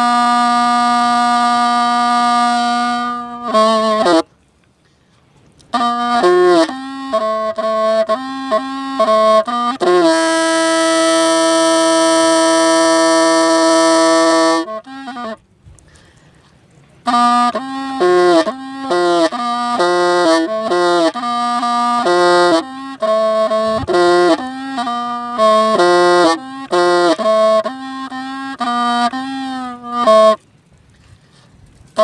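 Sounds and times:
bamboo pipe melody: 0.0 - 32.0.

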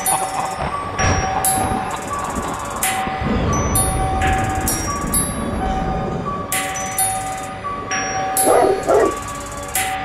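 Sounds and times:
hip-hop beat with chiming melody: 0.0 - 5.8, 6.4 - 10.0.

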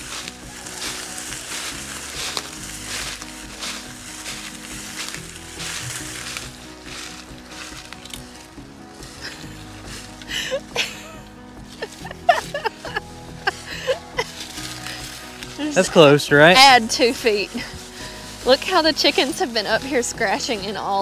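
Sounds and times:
background music: 0.0 - 21.0
leaves crunching under boots: 0.0 - 21.0.

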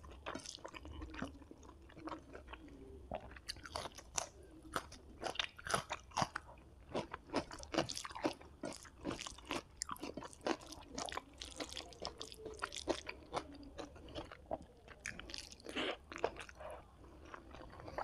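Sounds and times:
close chewing with wet mouth clicks: 0.0 - 18.0.

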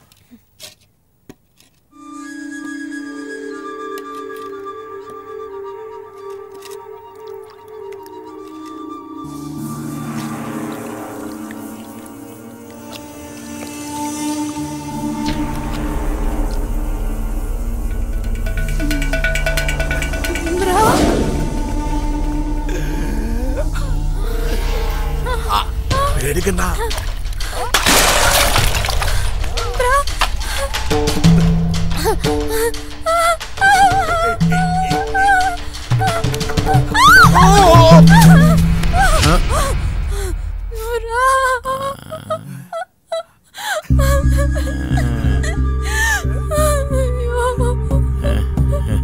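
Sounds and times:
low droning tones: 9.1 - 27.7
woman gasping and crying out: 36.0 - 49.0.

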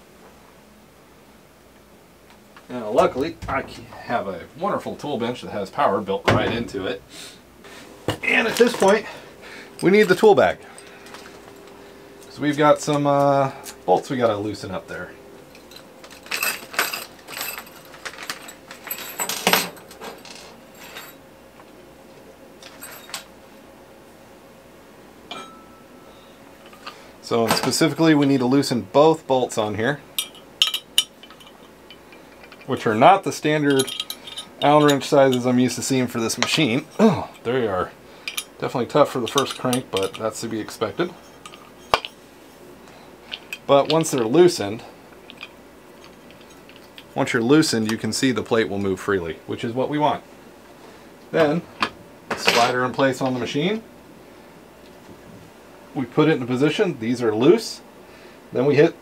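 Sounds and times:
metal hand tools clinking: 15.5 - 21.2, 30.2 - 32.7, 33.7 - 35.5, 39.2 - 40.6.

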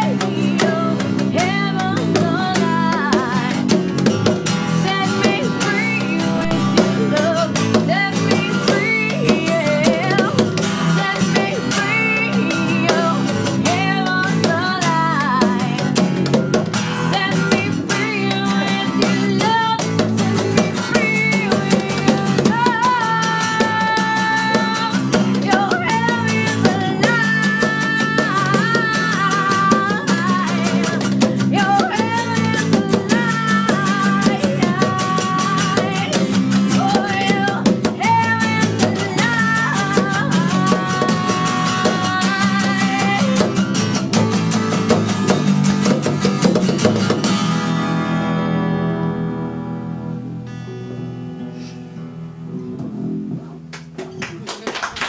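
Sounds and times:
woman singing: 0.0 - 46.8
strummed acoustic guitar: 0.0 - 54.0
bass guitar: 0.0 - 54.5.

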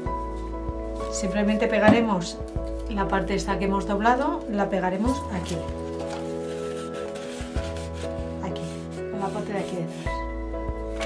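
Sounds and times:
background music: 0.0 - 11.0
cardstock rustling: 5.3 - 10.2.

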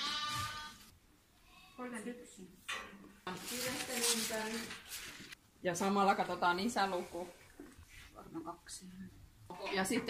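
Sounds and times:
sheep bleating: 0.0 - 0.9.

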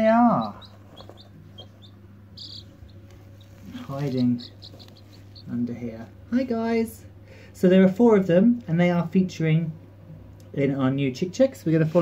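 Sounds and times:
chicks peeping: 0.0 - 6.0
low steady hum: 0.0 - 12.0.

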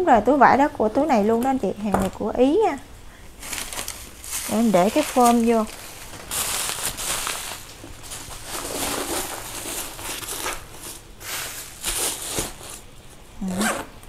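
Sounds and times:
leather handbag rustling and scraping: 3.4 - 12.9.

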